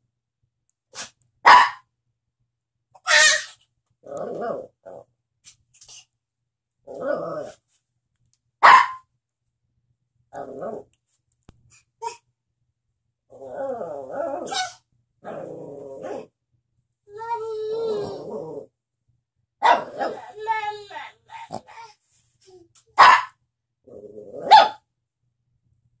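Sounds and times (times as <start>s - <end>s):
small dog barking: 1.0s - 1.8s, 8.6s - 9.0s, 14.4s - 14.8s, 19.6s - 20.6s, 23.0s - 23.4s, 24.4s - 24.8s.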